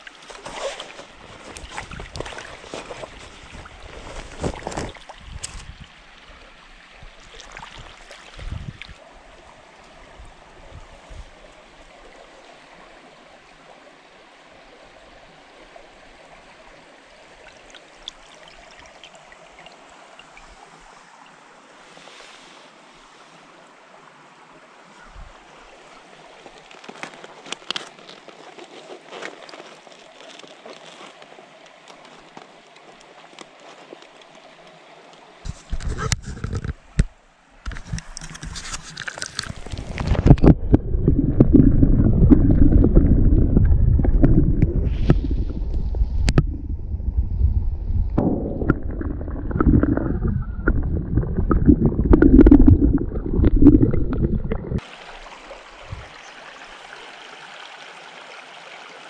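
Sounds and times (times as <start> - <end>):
water splashing: 0.0 - 6.1, 7.1 - 9.0, 37.9 - 46.6, 48.2 - 57.1
creek water trickling: 0.0 - 47.3, 48.0 - 59.0.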